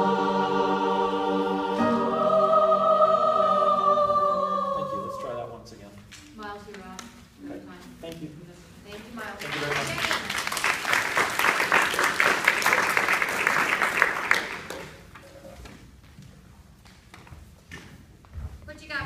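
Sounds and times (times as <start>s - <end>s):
group applauding: 9.0s - 15.3s.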